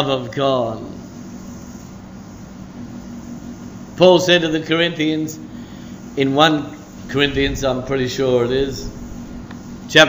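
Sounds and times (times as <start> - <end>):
room noise hum and hiss: 0.0 - 10.0.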